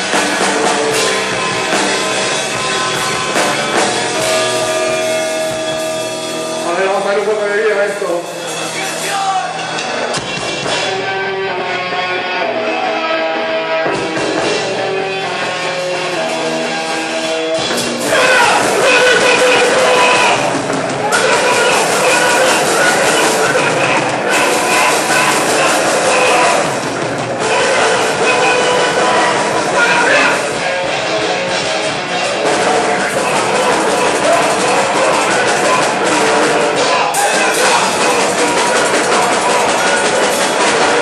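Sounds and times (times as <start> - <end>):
electric guitar held notes: 0.0 - 6.8
drum kit: 0.0 - 41.0
rock band playing loudly: 0.0 - 41.0.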